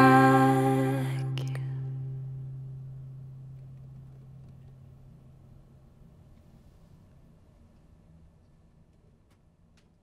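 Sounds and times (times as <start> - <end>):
acoustic guitar note ringing: 0.0 - 5.7.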